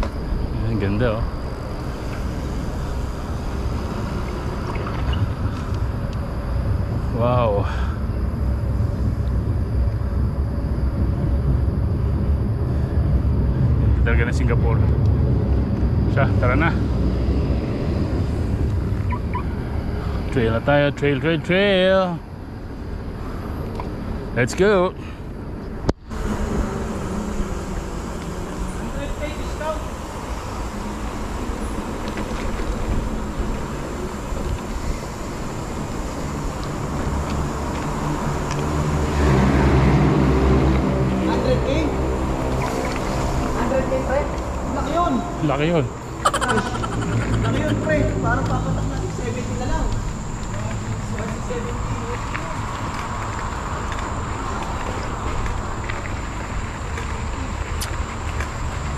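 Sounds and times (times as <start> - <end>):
bike tyres on paved path: 0.0 - 14.0, 14.6 - 47.0, 47.6 - 58.9
steady humming drone: 0.0 - 58.9
wind rumble on microphone: 0.0 - 58.9.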